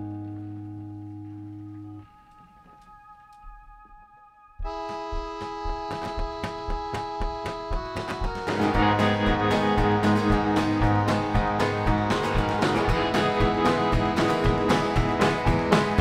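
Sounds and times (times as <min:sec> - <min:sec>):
picked acoustic guitar: 0:00.0 - 0:03.5, 0:04.7 - 0:16.0
acoustic guitar chord ringing: 0:00.0 - 0:04.0, 0:08.4 - 0:16.0
sustained keyboard chords: 0:00.0 - 0:16.0.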